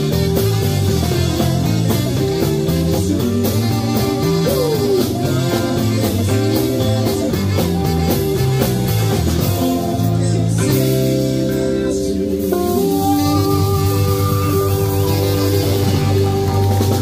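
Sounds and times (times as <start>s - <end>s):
drum kit: 0.0s - 17.0s
electric guitars: 0.0s - 17.0s
keyboard: 0.0s - 17.0s
note sliding down in pitch: 12.7s - 17.0s.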